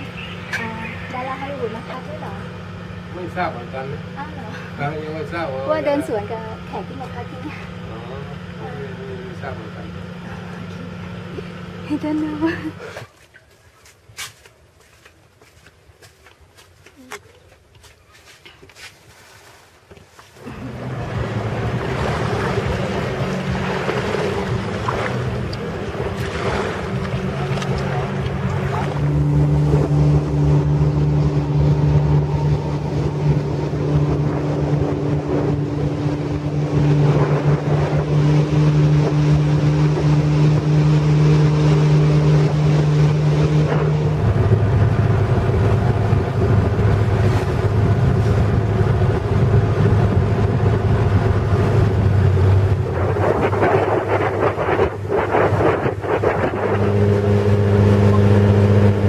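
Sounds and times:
motorboat engine running: 0.0s - 13.5s, 20.0s - 59.0s
water rushing past hull: 20.4s - 59.0s
wind buffeting microphone: 21.1s - 59.0s.

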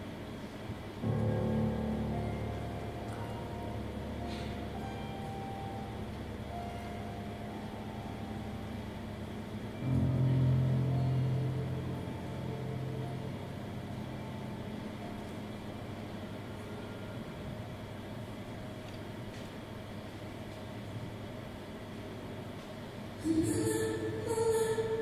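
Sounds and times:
grand piano: 0.0s - 20.0s.

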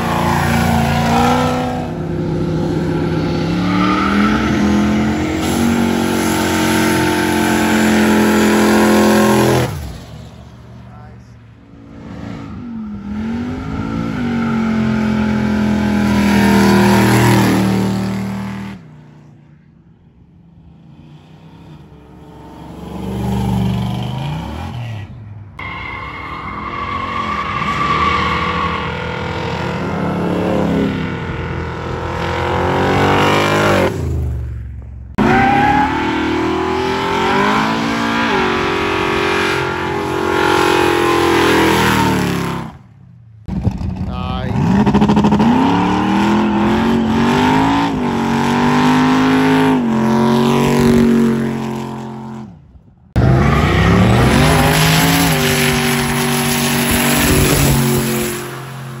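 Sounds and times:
car engines revving hard: 0.0s - 18.9s, 26.0s - 34.3s, 35.1s - 59.0s.

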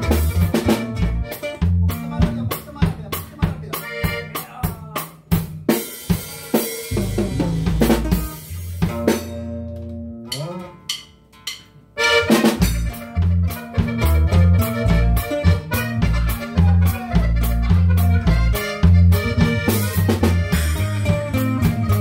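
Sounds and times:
electric bass: 0.0s - 4.3s, 6.2s - 10.9s, 12.0s - 22.0s
accordion: 0.0s - 4.8s, 12.0s - 22.0s
band playing live: 0.0s - 22.0s.

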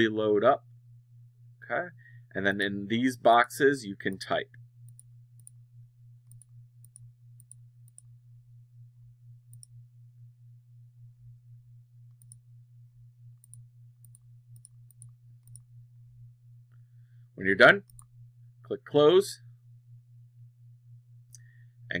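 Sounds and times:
steady low hum: 0.0s - 22.0s
computer mouse clicks: 4.9s - 5.6s, 6.3s - 8.2s, 9.5s - 9.8s, 12.1s - 12.4s, 13.4s - 15.7s, 17.9s - 18.1s.

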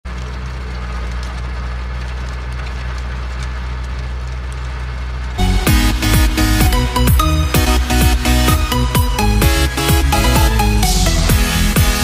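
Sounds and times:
tractor engine running: 0.0s - 12.0s
electronic dance music: 5.4s - 12.0s.

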